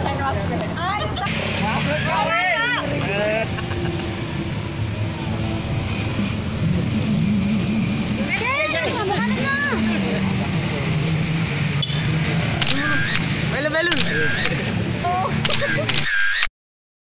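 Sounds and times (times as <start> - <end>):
people's voices: 0.0 - 16.1.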